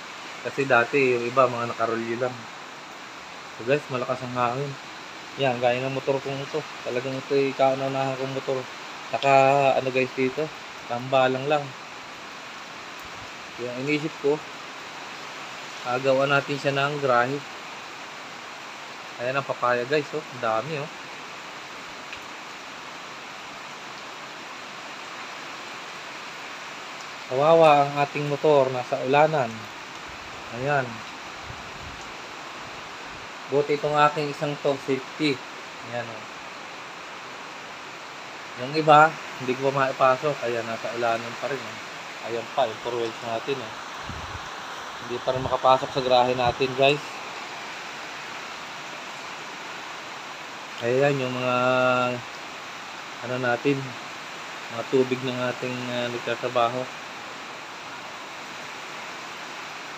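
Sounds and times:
heavy rain falling: 0.0s - 59.9s.

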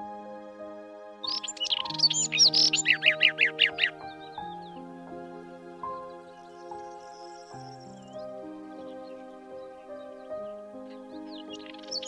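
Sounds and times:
gentle background music: 0.0s - 12.0s
robin singing: 1.2s - 12.0s.

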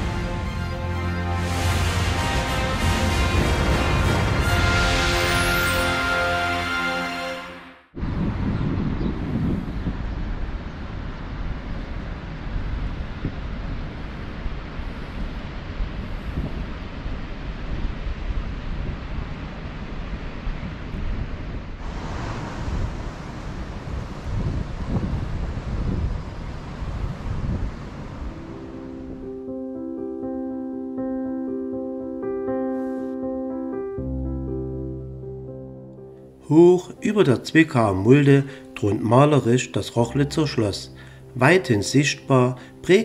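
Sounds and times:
wind buffeting microphone: 8.0s - 29.2s.

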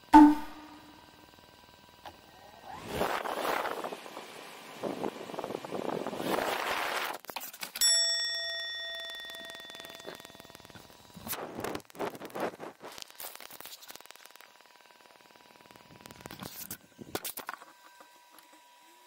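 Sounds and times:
sharp ding: 0.0s - 1.0s, 7.8s - 10.3s
bell-like ding ringing: 0.1s - 0.9s, 7.8s - 10.4s.

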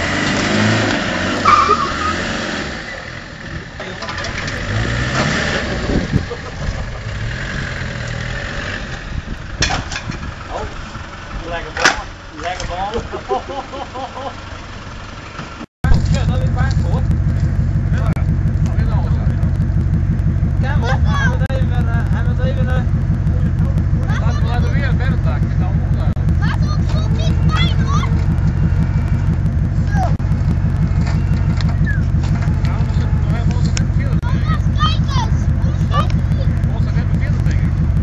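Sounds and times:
vehicle engine running: 0.0s - 38.0s
people calling out: 20.7s - 21.5s, 26.2s - 33.6s, 34.2s - 36.7s.

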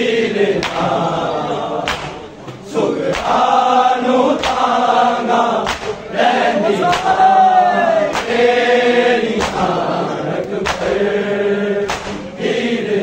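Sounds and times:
men chanting in unison: 0.0s - 13.0s
palms slapping chests: 0.6s - 1.0s, 1.8s - 3.5s, 4.4s - 4.8s, 5.6s - 6.1s, 6.8s - 7.2s, 8.1s - 8.5s, 9.4s - 9.8s, 10.4s - 11.1s, 11.8s - 12.4s.

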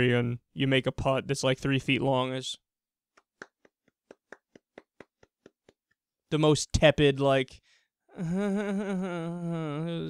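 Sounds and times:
soft slow hand clapping: 3.1s - 6.0s.

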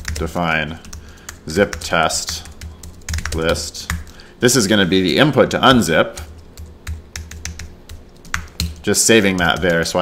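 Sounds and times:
computer keyboard keys clicking: 0.0s - 4.2s, 6.2s - 10.0s.

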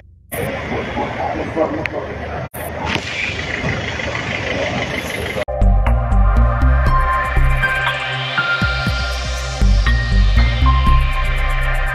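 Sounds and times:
low vehicle rumble: 0.0s - 11.9s
people talking: 0.3s - 5.5s.

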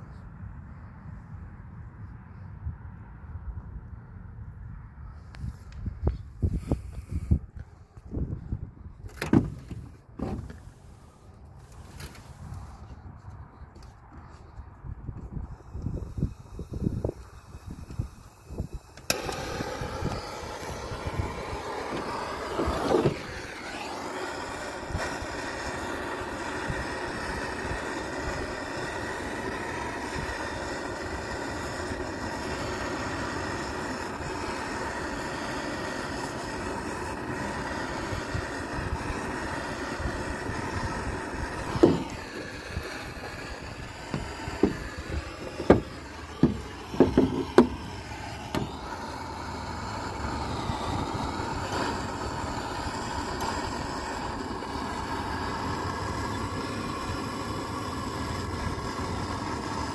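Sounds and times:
gas torch hissing: 5.1s - 59.9s.

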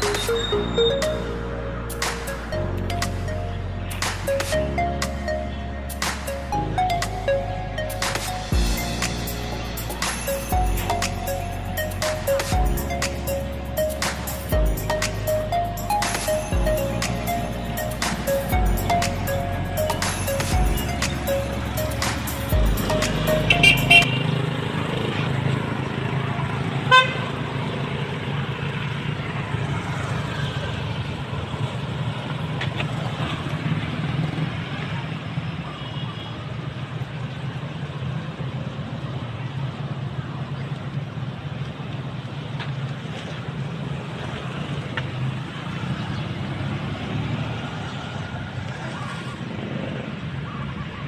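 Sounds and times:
vehicles passing on road: 0.0s - 51.0s.

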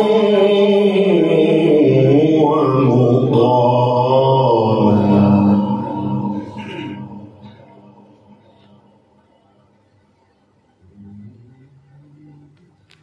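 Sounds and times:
man chanting recitation: 0.0s - 8.0s, 10.8s - 12.8s.

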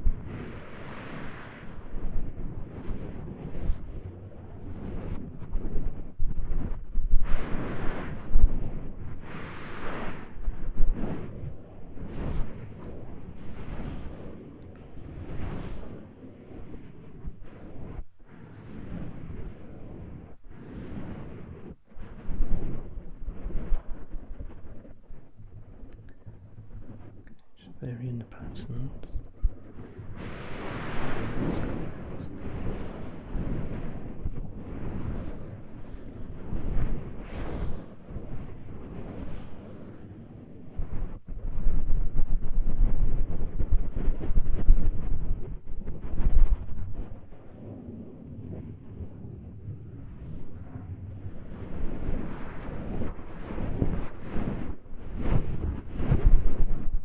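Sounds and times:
hands rubbing microphone: 4.7s - 16.2s, 20.6s - 27.6s, 28.3s - 33.9s, 41.5s - 47.4s.

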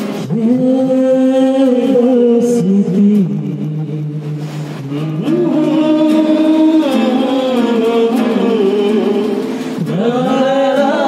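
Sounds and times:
acoustic guitar accompaniment: 0.0s - 11.0s
man singing into microphone: 0.0s - 11.0s.

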